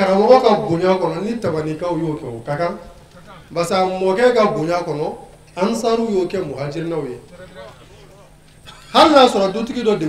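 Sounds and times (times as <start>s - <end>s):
man speaking into a microphone: 0.0s - 10.0s.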